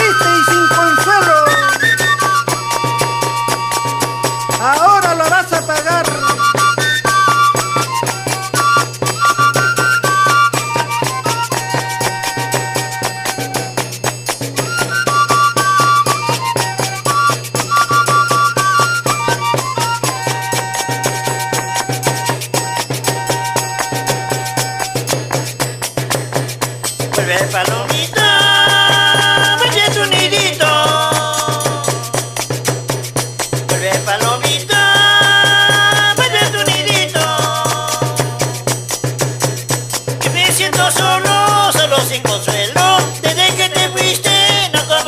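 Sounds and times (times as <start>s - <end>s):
folk music melody: 0.0s - 26.2s, 27.7s - 32.6s, 34.2s - 45.0s
percussion beat with rattle: 0.0s - 45.0s.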